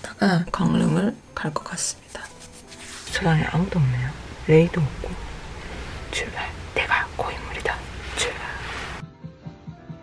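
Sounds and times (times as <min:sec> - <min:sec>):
steady low hum: 0:03.1 - 0:09.0.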